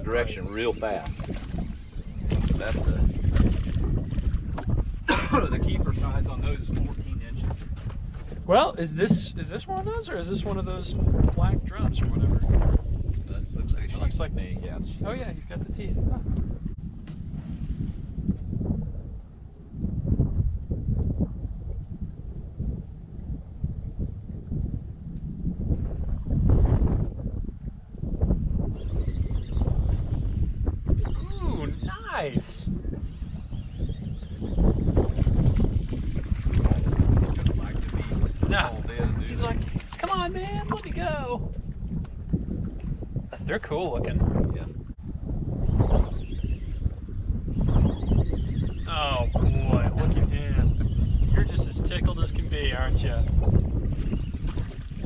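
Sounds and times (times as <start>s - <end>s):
wind buffeting microphone: 0.0s - 55.0s
people laughing: 5.1s - 5.6s.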